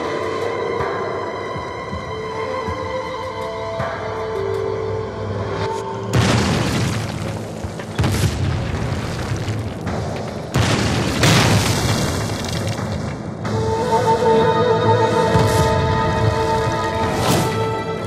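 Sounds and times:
background music: 0:00.0 - 0:18.0
explosion blasts: 0:06.1 - 0:13.0.

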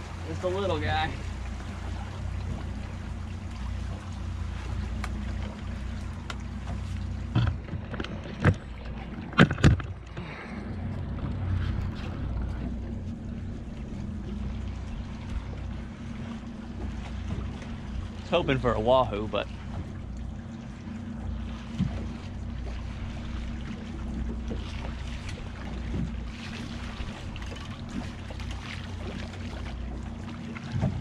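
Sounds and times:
outboard motors idling: 0:00.0 - 0:31.0.

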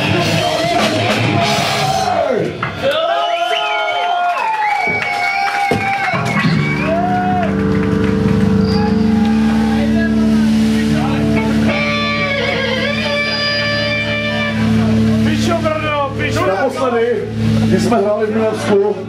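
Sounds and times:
electric guitar chord ringing: 0:06.5 - 0:19.0.

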